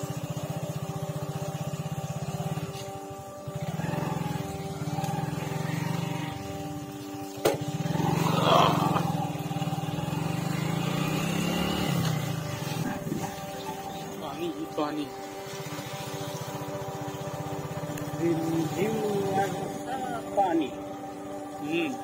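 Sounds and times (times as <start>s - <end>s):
motorcycle engine running: 0.0s - 22.0s.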